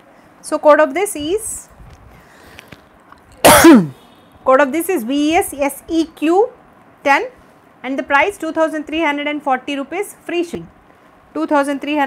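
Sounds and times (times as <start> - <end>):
woman sneezing: 3.4 - 4.0.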